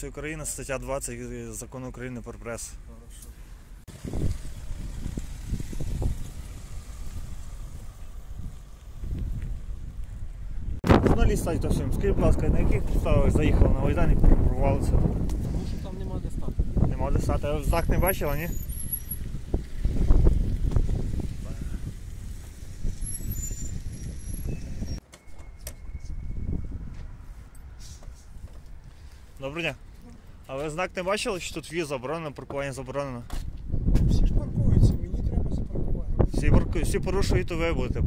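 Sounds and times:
car engine pulling away: 3.8s - 10.6s, 17.5s - 25.0s
wind rumble on microphone: 3.9s - 29.1s, 33.4s - 38.0s.

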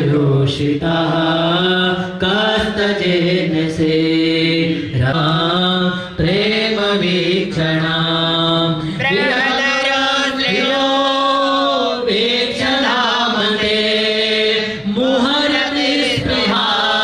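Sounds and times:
man chanting over loudspeakers: 0.0s - 17.0s.

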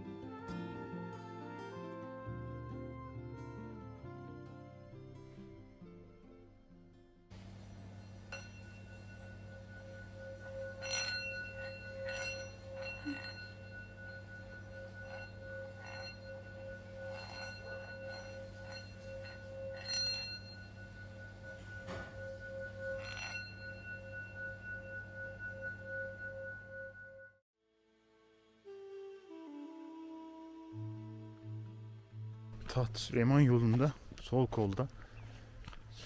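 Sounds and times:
singing bowl ringing: 7.3s - 27.4s.

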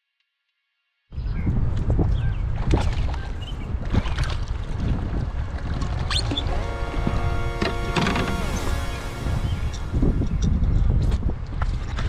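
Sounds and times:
wind buffeting microphone: 1.1s - 12.0s.

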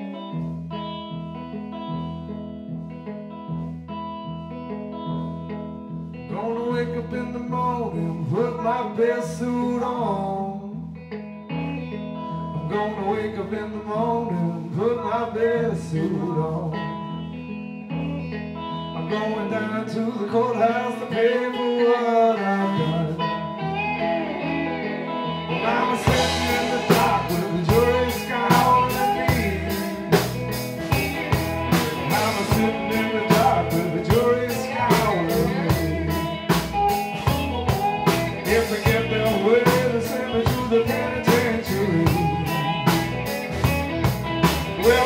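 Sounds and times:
bending guitar lead lines: 0.0s - 45.0s
blues band playing: 0.0s - 45.0s.

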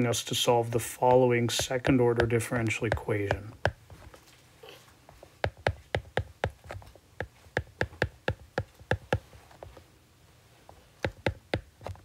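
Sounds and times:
stylus tapping on glass screen: 1.5s - 3.8s, 5.4s - 9.3s, 11.0s - 12.0s.

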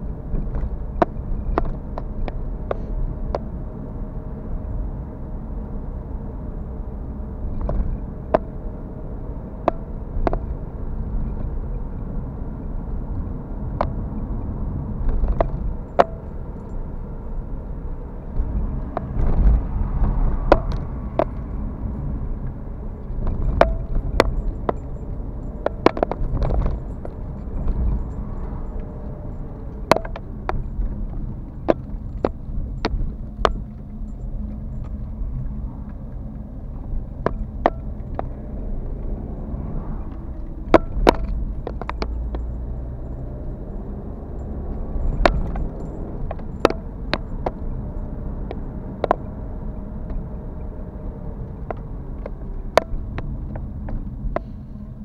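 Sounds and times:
road and engine rumble: 0.0s - 55.0s
sharp clicks and rattles: 13.0s - 17.4s, 18.3s - 54.6s.

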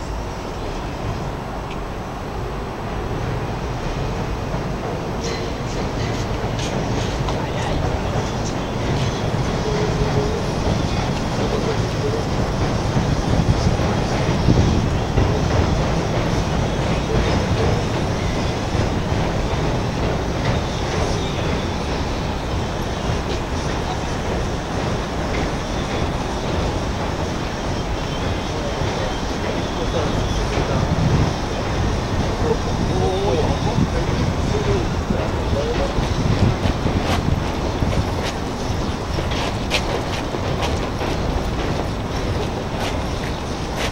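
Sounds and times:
outdoor city noise: 0.0s - 43.9s
train rumbling past: 0.0s - 43.9s.

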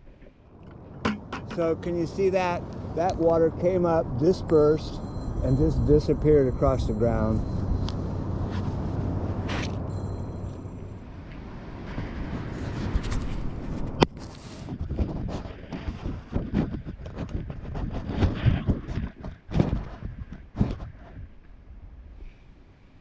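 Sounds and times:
outdoor noise: 0.0s - 23.0s
camera scraping on sand: 7.9s - 9.8s, 11.9s - 21.1s.

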